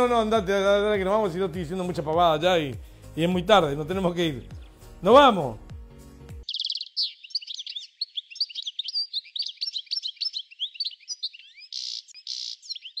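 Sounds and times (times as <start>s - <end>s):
small birds chirping: 6.4s - 13.0s.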